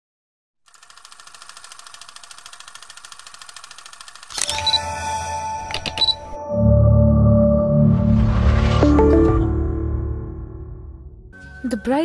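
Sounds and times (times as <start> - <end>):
fast high-pitched rattle: 0.7 - 4.8.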